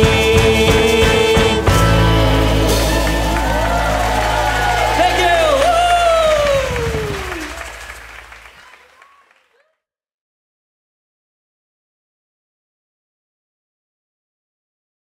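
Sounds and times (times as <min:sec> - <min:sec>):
held bass note: 0:00.0 - 0:07.6
audience cheering and whooping: 0:02.1 - 0:09.4
audience clapping: 0:02.4 - 0:09.7.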